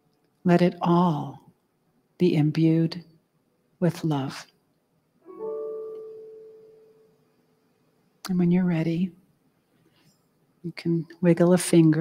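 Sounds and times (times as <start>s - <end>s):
ringing musical tone: 5.3s - 7.4s.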